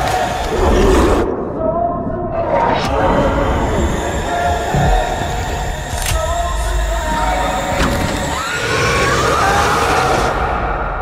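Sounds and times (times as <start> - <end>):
eerie sustained tones: 0.0 - 11.0.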